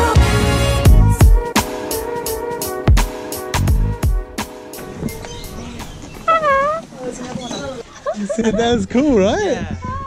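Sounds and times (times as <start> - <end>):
cockatoo call: 4.8 - 8.2.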